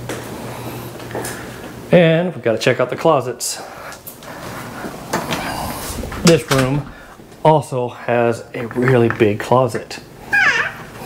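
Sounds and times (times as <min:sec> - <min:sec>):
closet door opening: 0:05.2 - 0:07.2.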